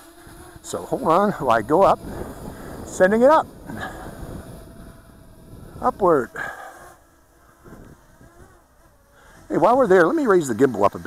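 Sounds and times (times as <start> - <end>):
wind on microphone: 0.0 - 10.0
drone propellers buzzing: 0.0 - 11.0
man speaking: 0.6 - 2.1, 2.9 - 4.0, 5.8 - 6.7, 9.5 - 11.0.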